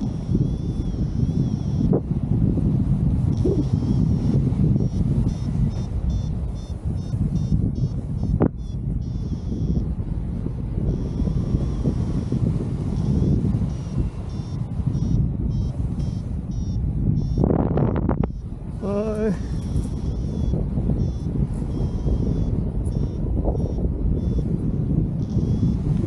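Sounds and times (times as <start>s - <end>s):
variometer beeping high tones: 0.0s - 2.2s, 3.1s - 26.0s
wind rushing over microphone: 0.0s - 26.0s.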